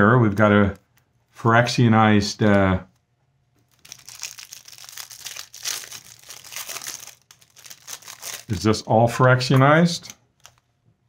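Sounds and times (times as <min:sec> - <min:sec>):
plastic wrapping crinkling: 0:03.6 - 0:10.7.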